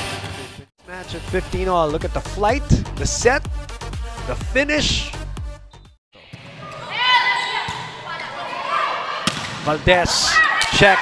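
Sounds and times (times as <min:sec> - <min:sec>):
background music: 0:00.0 - 0:06.0.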